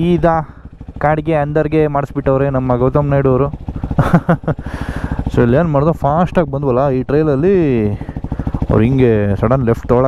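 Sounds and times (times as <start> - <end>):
man talking: 0.0 - 3.6, 5.2 - 10.0
motorcycle engine running: 0.0 - 10.0.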